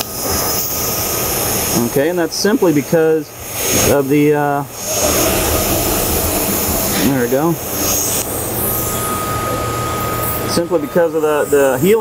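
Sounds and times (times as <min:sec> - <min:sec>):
welding arc hissing: 0:00.0 - 0:10.6.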